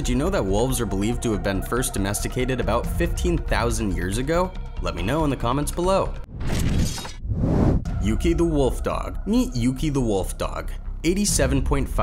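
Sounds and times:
noisy transition bursts: 7.2s - 7.9s.

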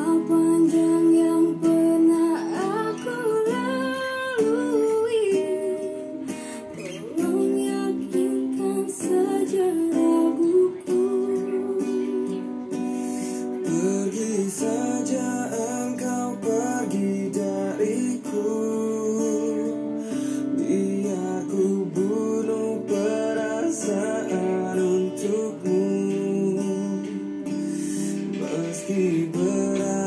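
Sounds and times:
acoustic guitar chords: 0.0s - 30.0s
woman singing: 0.0s - 30.0s.

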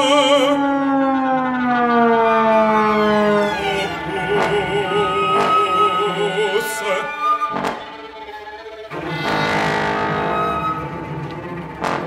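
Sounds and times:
orchestral downward glissando: 0.0s - 12.0s.

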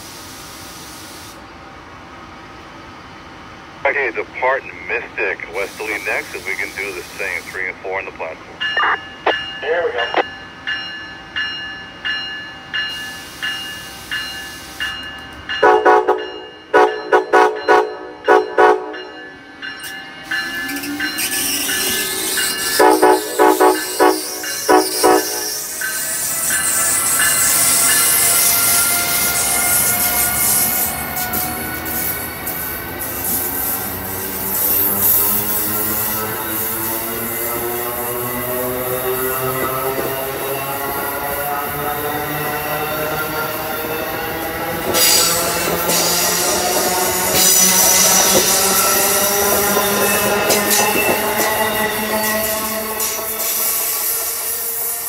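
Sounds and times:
train cars rushing past: 0.0s - 55.0s
train horn blasts: 15.6s - 19.1s, 22.7s - 25.6s.

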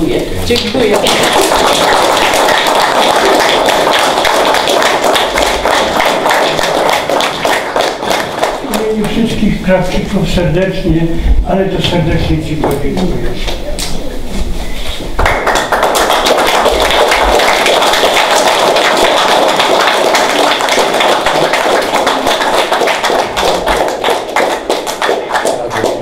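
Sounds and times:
audience clapping: 0.5s - 9.2s, 15.1s - 26.0s.

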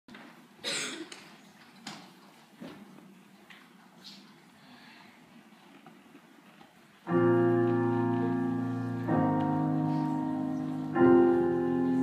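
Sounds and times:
person coughing: 0.6s - 1.1s.

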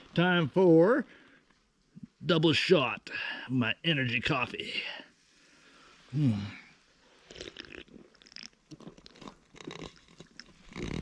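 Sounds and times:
man gulping a drink: 7.2s - 11.0s
mouth clicks: 7.3s - 11.0s.

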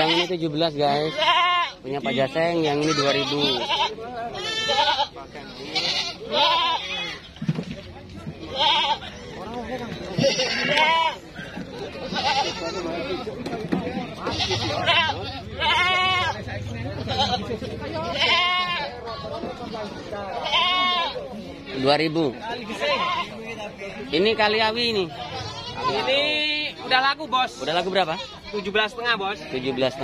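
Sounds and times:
goats bleating: 0.0s - 7.4s, 8.4s - 9.3s, 10.1s - 13.4s, 14.2s - 19.0s, 20.3s - 21.4s, 22.6s - 23.6s, 25.2s - 28.8s.

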